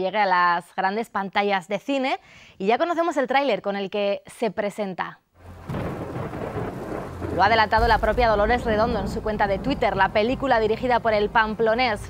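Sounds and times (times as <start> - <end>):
low thunder rumble: 5.4 - 12.0
steady rain: 5.4 - 12.0.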